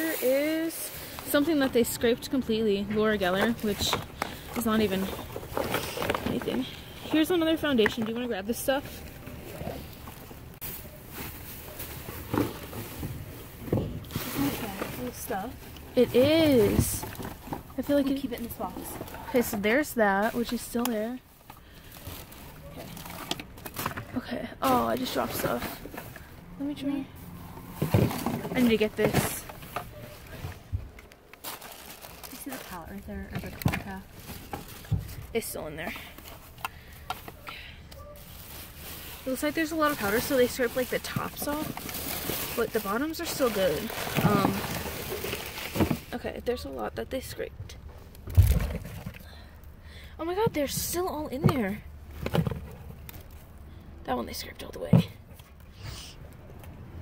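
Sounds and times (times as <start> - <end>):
plastic bags crinkling: 31.0 - 36.6, 38.2 - 46.2.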